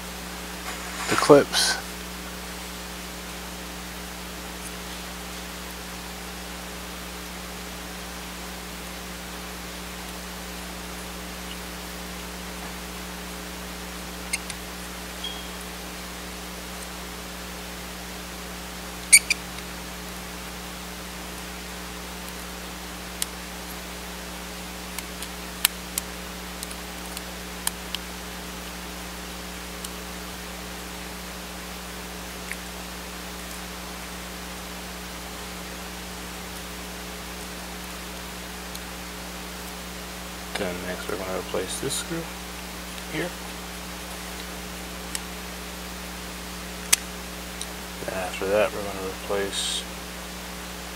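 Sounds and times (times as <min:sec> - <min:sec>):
low electrical hum: 0:00.0 - 0:50.9
steady hiss: 0:00.0 - 0:50.9.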